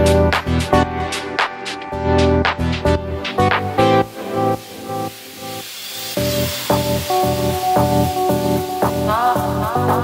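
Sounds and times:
steady beat: 0:00.1 - 0:10.0
hiss: 0:03.3 - 0:10.0.

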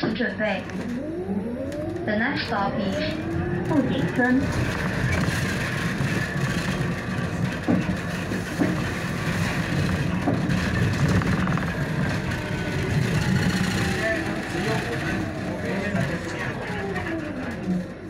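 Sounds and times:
bus rumble and road noise: 0:00.0 - 0:18.0
faint passenger voices: 0:02.0 - 0:05.3, 0:11.8 - 0:18.0.

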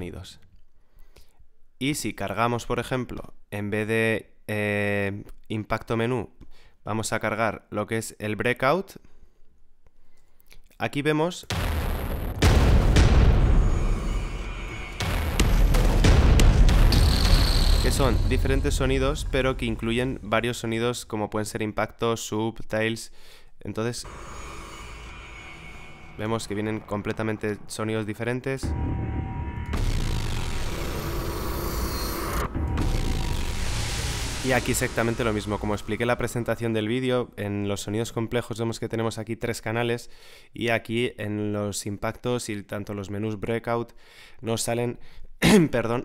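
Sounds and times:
heavy booming cinematic hits: 0:11.5 - 0:20.9, 0:24.1 - 0:37.0.

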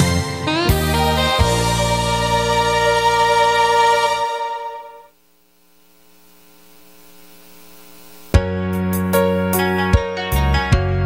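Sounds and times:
audio hiss: 0:00.8 - 0:09.8
faint mains hum: 0:02.7 - 0:08.6.

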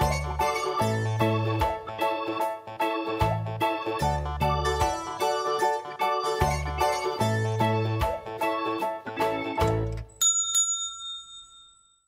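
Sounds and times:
small bell ringing: 0:10.1 - 0:12.0.

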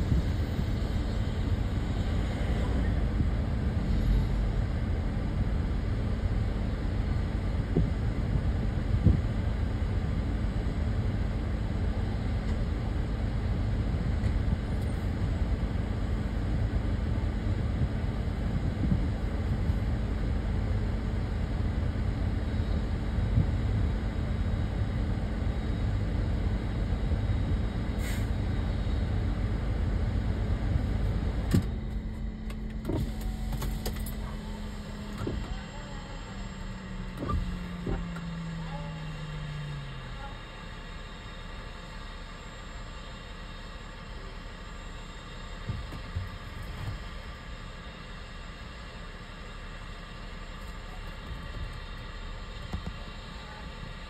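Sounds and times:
vehicle idling rumble: 0:00.0 - 0:54.0.

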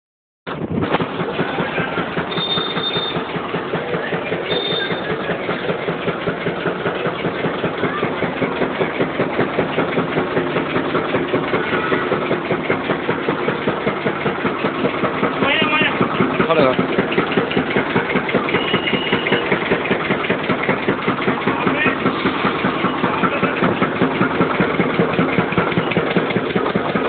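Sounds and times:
juice crusher engine running: 0:00.5 - 0:27.0.

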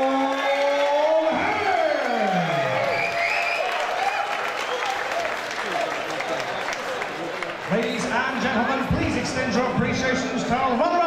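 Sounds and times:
audience applauding: 0:00.0 - 0:08.8
man's drawn-out announcing call: 0:07.7 - 0:11.0.

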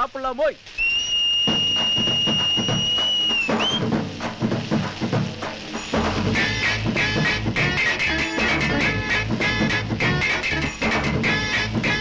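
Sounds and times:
high finger whistle: 0:00.8 - 0:03.9
song drum beat: 0:01.2 - 0:12.0.

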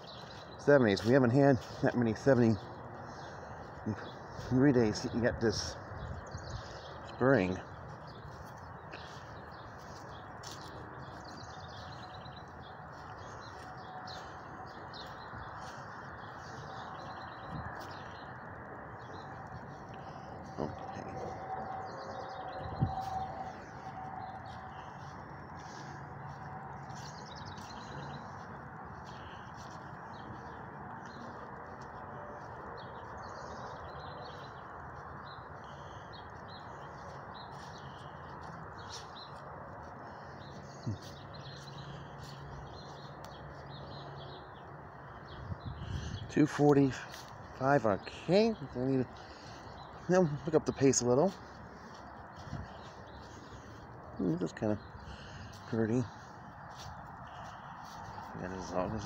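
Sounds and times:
birds chirping and singing: 0:00.0 - 0:59.0.

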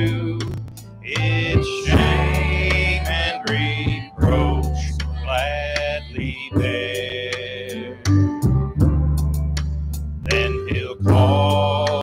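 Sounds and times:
bass and guitar accompaniment: 0:00.0 - 0:12.0.

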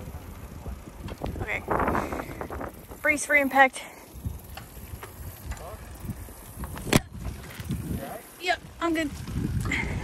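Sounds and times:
wind and road rumble: 0:00.0 - 0:10.0.

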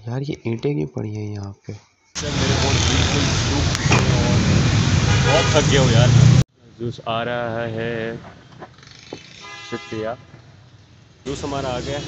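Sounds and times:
vehicle horns honking: 0:02.2 - 0:06.4, 0:09.3 - 0:10.3
busy street noise with voices: 0:02.2 - 0:12.0.

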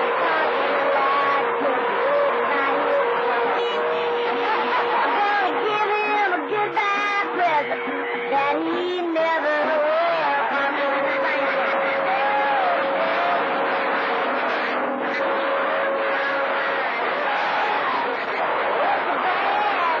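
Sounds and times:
garbled distant radio voices: 0:00.0 - 0:20.0
radio static hiss: 0:10.8 - 0:19.7.

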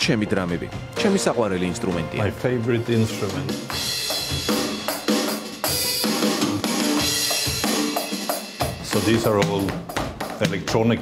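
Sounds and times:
electronic drum and cymbal hits: 0:02.9 - 0:11.0.

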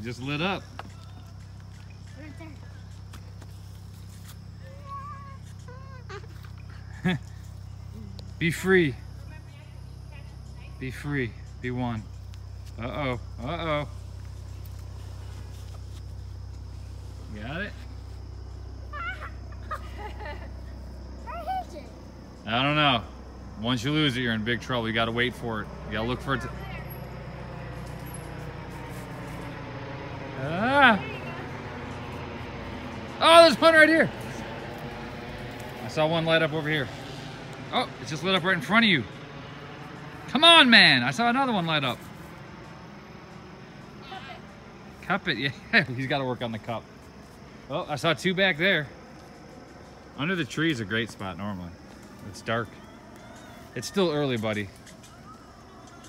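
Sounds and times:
distant voices calling: 0:00.0 - 0:56.0
insects trilling: 0:00.0 - 0:56.0
low outdoor background hum: 0:00.0 - 0:56.0.

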